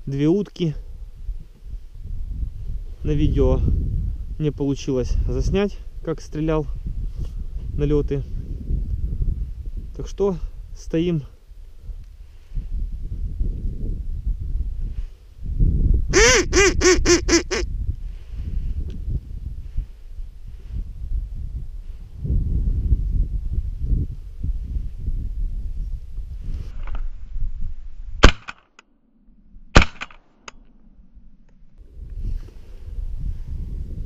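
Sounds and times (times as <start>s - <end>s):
wind rumble on microphone: 0.0s - 28.3s, 30.6s - 34.0s
microphone handling noise: 6.7s - 9.9s, 11.8s - 28.3s, 31.7s - 34.0s
duck call quacks: 16.1s - 17.6s
shotgun shots: 28.2s - 28.7s, 29.7s - 30.5s.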